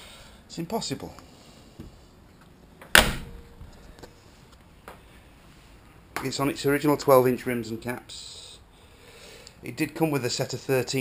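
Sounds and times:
car door slamming: 0:02.9 - 0:03.4.

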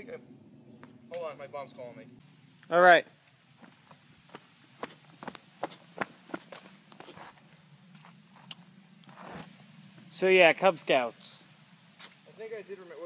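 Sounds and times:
footsteps on dry leaves: 0:03.5 - 0:08.5, 0:09.1 - 0:09.6.

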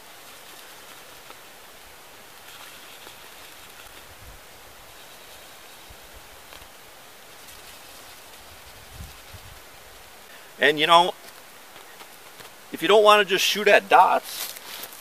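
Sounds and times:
steady hiss: 0:00.0 - 0:15.0.

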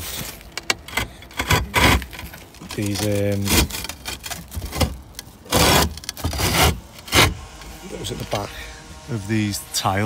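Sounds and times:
felt scraping against roof tiles: 0:00.0 - 0:08.8.

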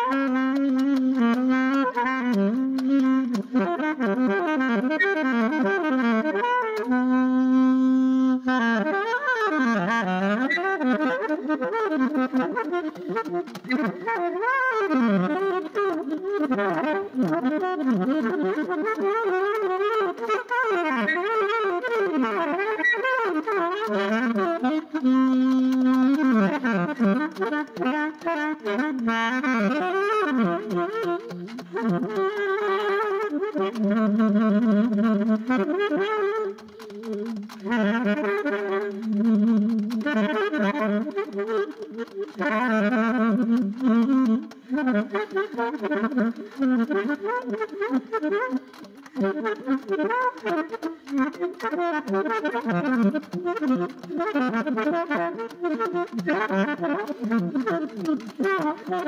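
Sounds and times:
alto saxophone free jazz: 0:00.0 - 0:59.0.

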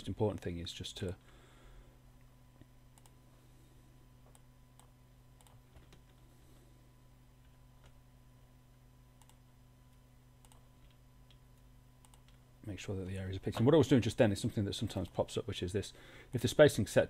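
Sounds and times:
steady low hum: 0:00.0 - 0:17.0
keyboard and mouse clicks: 0:03.0 - 0:03.2, 0:10.4 - 0:11.4, 0:12.0 - 0:12.4.

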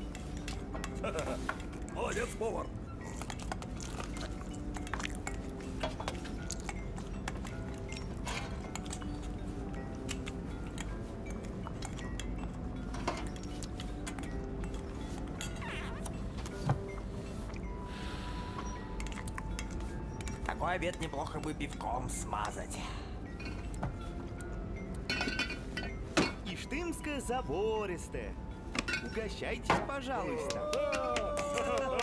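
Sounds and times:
quiet background music: 0:00.0 - 0:32.0.

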